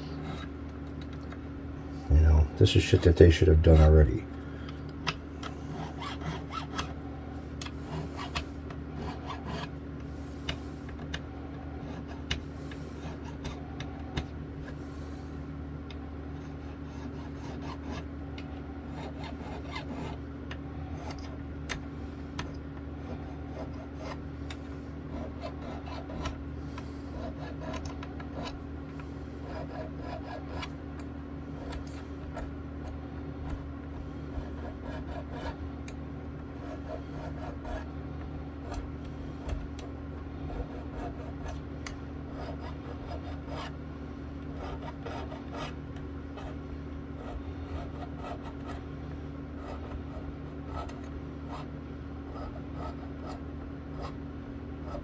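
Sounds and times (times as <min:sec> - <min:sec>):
steady low hum: 0:00.0 - 0:55.0
file scraping metal frets: 0:05.6 - 0:06.9, 0:07.8 - 0:09.7, 0:18.9 - 0:20.2, 0:29.4 - 0:30.7.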